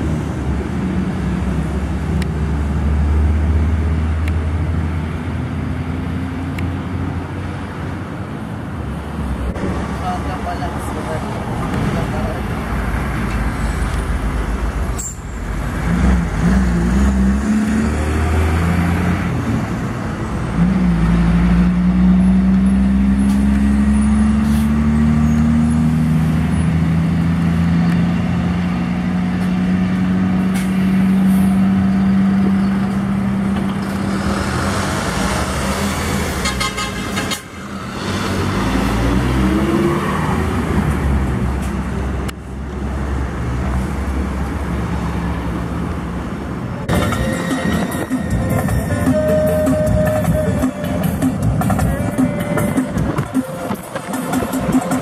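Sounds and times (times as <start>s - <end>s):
truck diesel engine under load: 0.0s - 55.0s
tyre and road noise: 0.0s - 55.0s.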